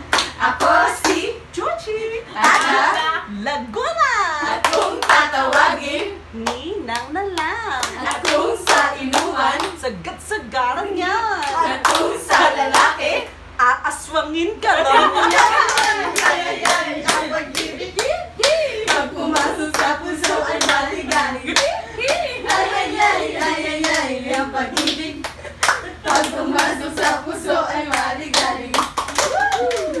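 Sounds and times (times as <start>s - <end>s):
women clapping in rhythm: 0.0s - 1.3s, 2.4s - 2.9s, 4.5s - 9.9s, 11.4s - 13.3s, 15.3s - 30.0s
women singing: 0.1s - 30.0s.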